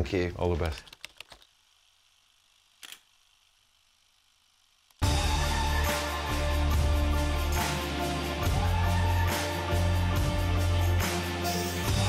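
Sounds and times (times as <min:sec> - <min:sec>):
sharp click: 0:02.8 - 0:03.1.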